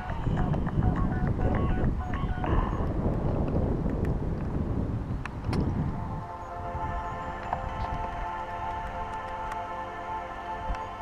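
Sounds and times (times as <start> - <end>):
wind buffeting microphone: 0.0 - 9.8.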